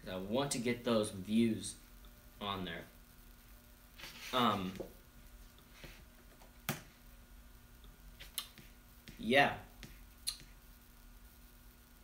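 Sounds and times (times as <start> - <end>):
faint room tone hum: 0.0 - 12.0.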